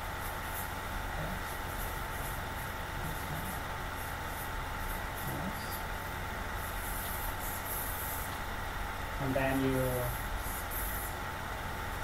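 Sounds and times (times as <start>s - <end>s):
low electrical hum: 0.0s - 12.0s
background hiss: 6.5s - 12.0s.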